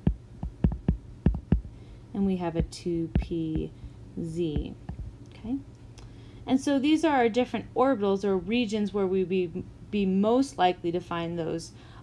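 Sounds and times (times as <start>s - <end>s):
stylus tapping on tablet screen: 0.0s - 1.7s, 2.6s - 3.7s
steady low hum: 0.0s - 12.0s.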